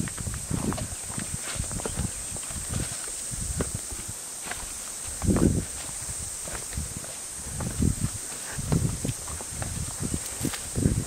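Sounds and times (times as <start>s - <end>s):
footsteps on rocks and stones: 0.0s - 11.0s.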